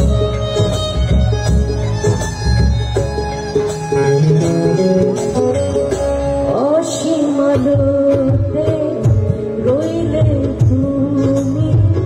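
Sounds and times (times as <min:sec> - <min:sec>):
bass: 0:00.0 - 0:12.0
plucked string melody: 0:00.0 - 0:12.0.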